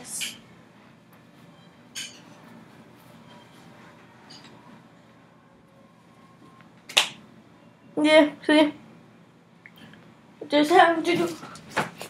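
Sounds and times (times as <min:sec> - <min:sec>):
sharp snap: 0:06.9 - 0:07.2.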